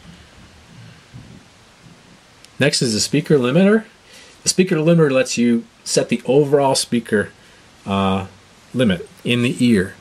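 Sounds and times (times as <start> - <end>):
faint soft low rumbles: 0.0 - 3.9.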